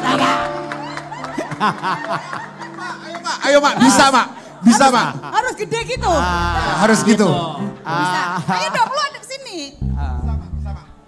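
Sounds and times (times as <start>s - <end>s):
background music with held notes: 0.0s - 9.0s
people laughing: 0.1s - 9.2s.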